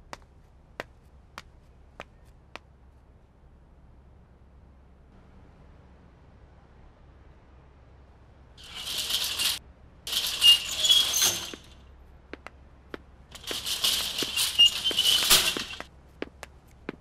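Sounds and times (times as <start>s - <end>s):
metal gate and keys rattling: 8.6s - 11.8s, 13.3s - 15.9s.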